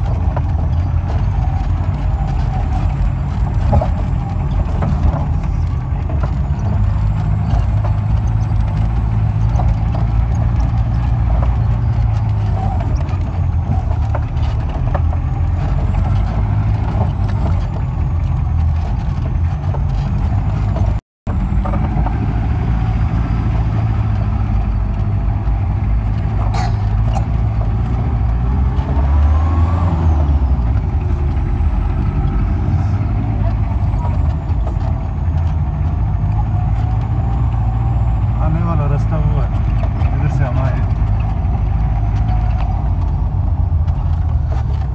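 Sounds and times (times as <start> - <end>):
engine rumbling under load: 0.0 - 44.9.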